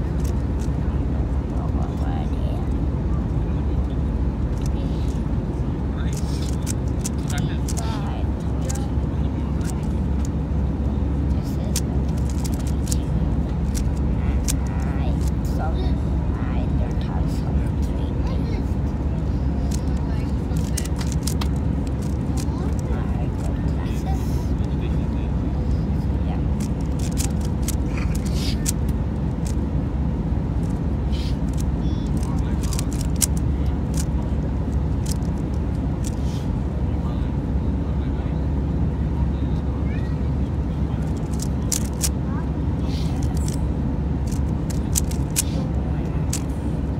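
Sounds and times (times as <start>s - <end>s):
airliner cabin drone: 0.0s - 46.9s
plastic puzzle cube clicks: 20.6s - 22.8s, 26.6s - 28.8s, 32.2s - 34.1s, 35.0s - 35.4s, 41.1s - 42.1s, 44.3s - 45.4s.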